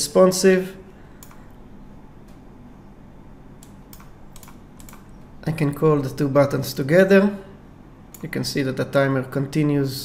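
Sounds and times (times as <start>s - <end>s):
faint low hum: 0.0s - 10.0s
computer clicks: 1.2s - 1.6s, 3.6s - 5.2s.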